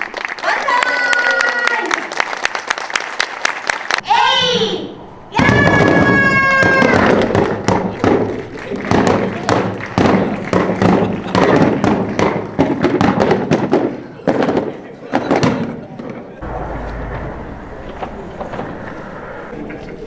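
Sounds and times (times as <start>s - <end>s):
voices: 14.0s - 20.0s.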